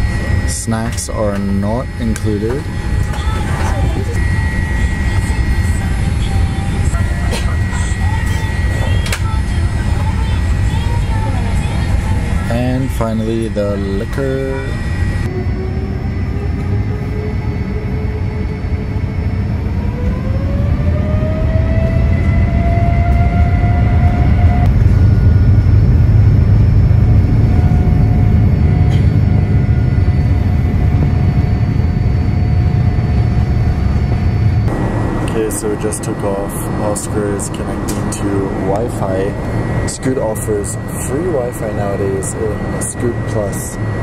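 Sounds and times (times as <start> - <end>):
deep rumble: 0.0 - 44.0
jet engine whine rising: 0.0 - 44.0.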